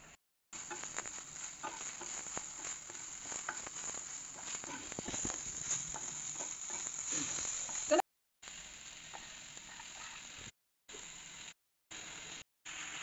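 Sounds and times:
spatula scraping pan: 0.6 - 8.0
okra sizzling in a pan: 0.6 - 13.0.

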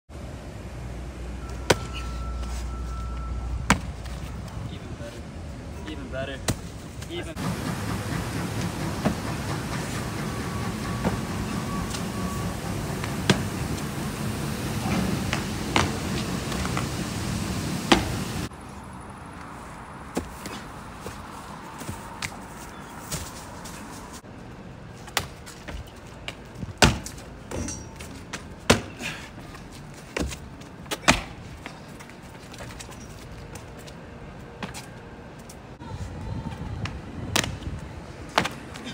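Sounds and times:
outdoor background noise: 0.1 - 38.9
shoes landing on concrete: 3.7 - 4.3, 15.2 - 16.9, 17.9 - 18.2, 25.0 - 33.7, 37.3 - 38.9.

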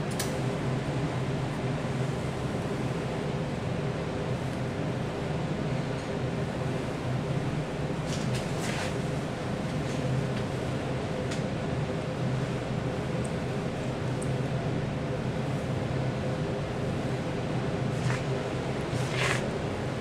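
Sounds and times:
ventilation hum: 0.0 - 20.0.

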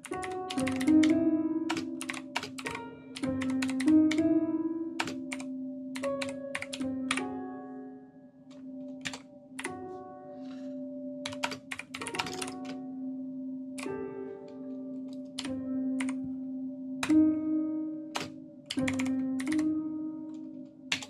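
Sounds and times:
keyboard key clicks: 11.3 - 12.8.

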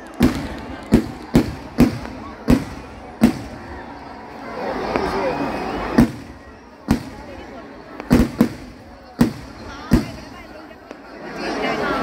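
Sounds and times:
fireworks bangs: 0.0 - 4.1, 5.8 - 11.0.

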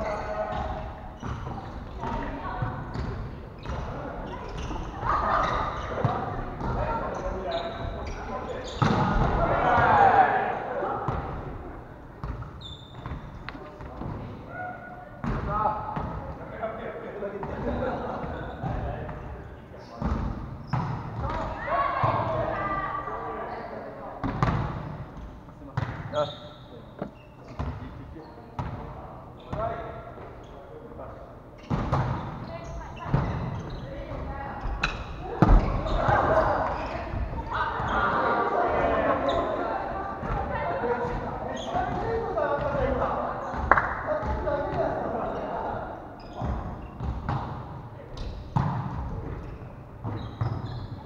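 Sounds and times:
players shouting: 9.2 - 10.8.

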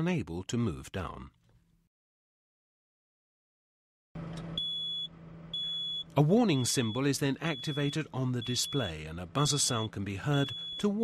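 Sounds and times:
high-pitched warning beep: 4.6 - 11.0
diesel engine idling: 5.2 - 11.0.

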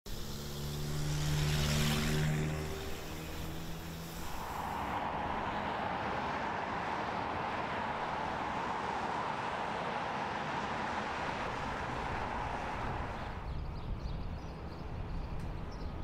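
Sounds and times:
city hum: 0.0 - 16.0
vehicle engine passing: 0.1 - 13.4.

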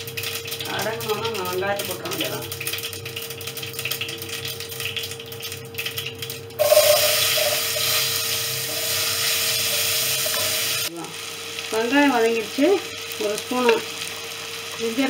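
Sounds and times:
food frying in oil: 0.0 - 15.0.

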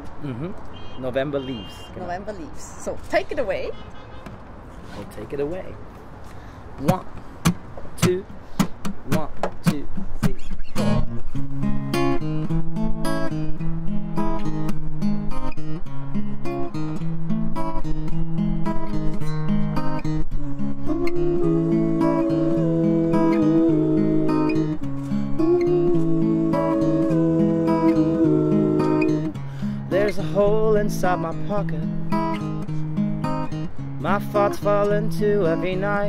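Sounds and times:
strummed acoustic guitars: 6.3 - 36.0
held melody line: 19.5 - 32.4.

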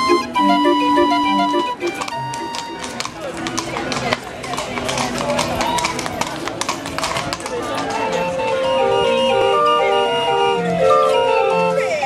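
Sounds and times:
hooves clip-clopping on pavement: 0.0 - 12.0
people talking: 0.0 - 12.0.

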